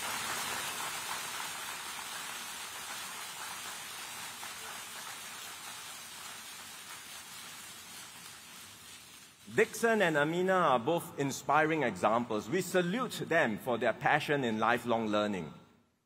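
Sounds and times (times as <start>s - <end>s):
audience applauding: 0.0s - 8.5s.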